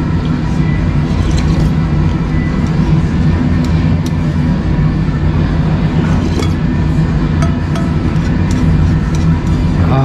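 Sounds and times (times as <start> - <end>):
restaurant room rumble: 0.0 - 10.0.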